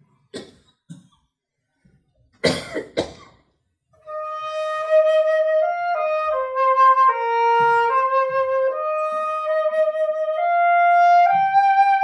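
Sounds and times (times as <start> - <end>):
person coughing: 0.3 - 1.2, 2.4 - 3.4.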